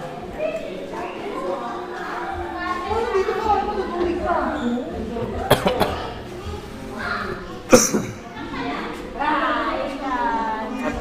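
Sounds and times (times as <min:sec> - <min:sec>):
person coughing: 0:05.5 - 0:06.1, 0:07.7 - 0:08.2.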